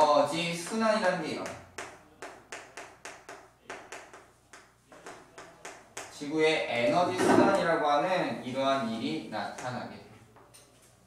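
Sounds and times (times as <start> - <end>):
chalk tapping on chalkboard: 0.0 - 6.3, 9.4 - 9.9.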